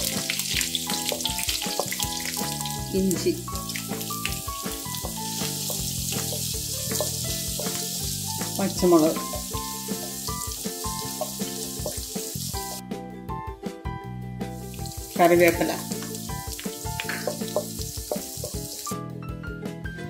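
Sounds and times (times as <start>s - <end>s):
garlic sizzling in hot oil: 0.0s - 12.8s, 14.4s - 19.0s
background music: 0.0s - 20.0s.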